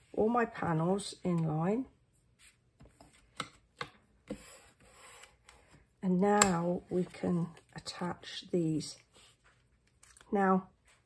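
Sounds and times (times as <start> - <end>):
soft rubbing of paper: 2.1 - 3.1, 9.0 - 9.8.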